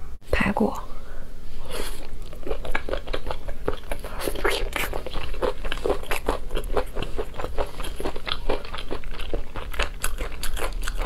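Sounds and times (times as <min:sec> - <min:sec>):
biting and chewing meat: 0:01.8 - 0:11.0.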